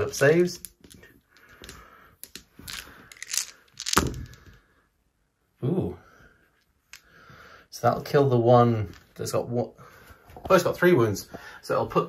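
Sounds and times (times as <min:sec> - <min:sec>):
plastic dice rattling in hand: 0:00.4 - 0:04.5
dice thrown into tray: 0:00.5 - 0:04.6.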